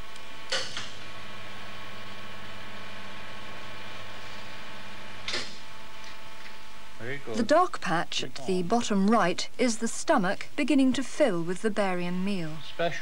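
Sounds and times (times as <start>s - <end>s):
x-ray machine humming: 0.0s - 13.0s.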